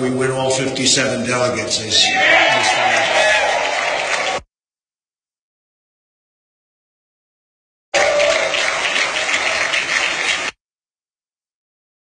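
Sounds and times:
crowd applauding: 2.0s - 4.5s, 7.9s - 10.6s.

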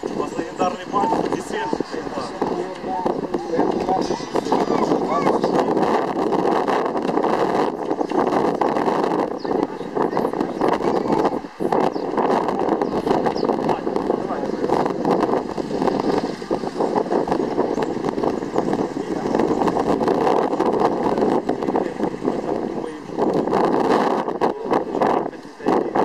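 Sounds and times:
group of people chattering: 0.0s - 26.0s
outdoor background noise: 0.0s - 26.0s.

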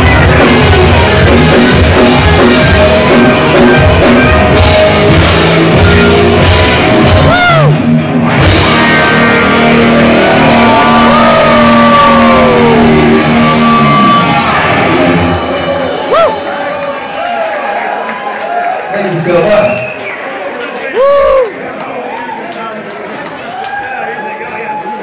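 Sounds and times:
rock band with electric guitars: 0.0s - 18.4s.

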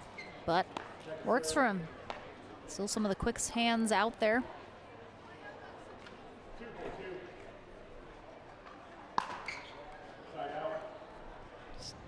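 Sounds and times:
murmur of crowd voices: 0.0s - 12.0s
paddle striking ball: 9.2s - 9.5s.

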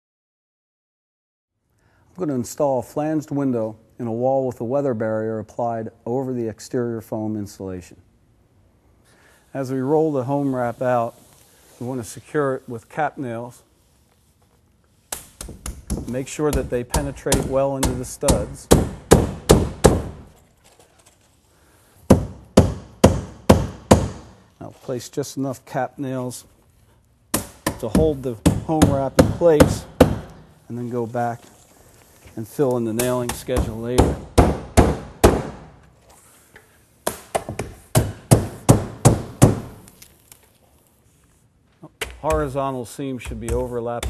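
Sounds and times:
hammer driving nails into wood: 15.1s - 20.3s, 22.1s - 24.4s, 27.3s - 30.4s, 33.0s - 35.8s, 37.0s - 39.9s.

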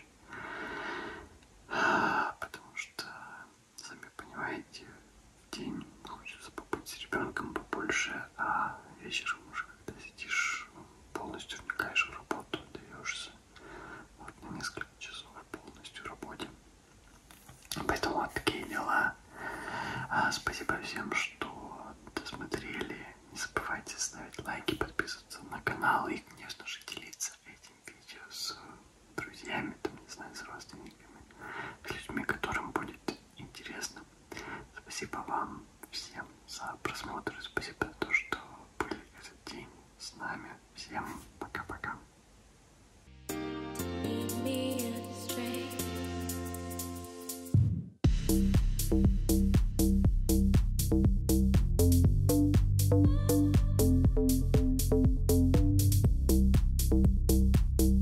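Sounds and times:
man whispering: 1.8s - 13.5s, 14.2s - 16.6s, 17.7s - 19.3s, 20.0s - 42.1s.

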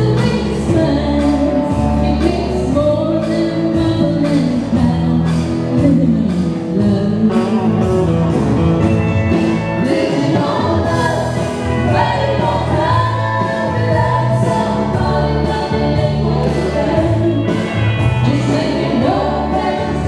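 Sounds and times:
woman singing into microphone: 0.0s - 8.0s, 9.8s - 20.0s
recorded backing track: 0.0s - 20.0s.

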